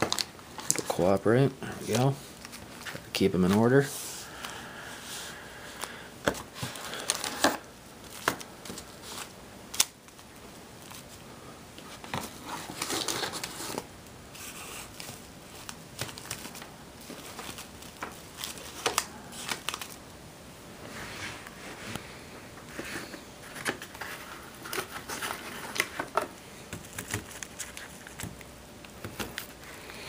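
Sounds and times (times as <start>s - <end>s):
wax paper packs crinkling: 0.0s - 11.2s, 11.8s - 20.0s, 22.7s - 30.0s.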